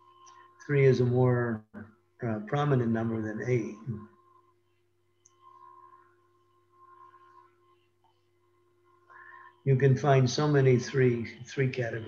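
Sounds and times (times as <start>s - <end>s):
faint low hum: 0.0s - 12.0s
thin steady tones: 0.0s - 12.0s.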